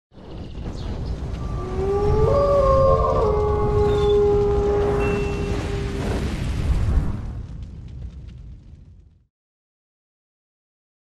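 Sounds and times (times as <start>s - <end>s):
wolf howl: 1.4s - 6.3s.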